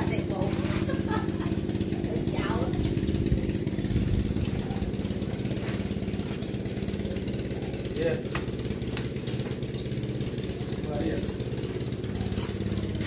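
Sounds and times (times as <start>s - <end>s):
small engine running: 0.0s - 13.0s.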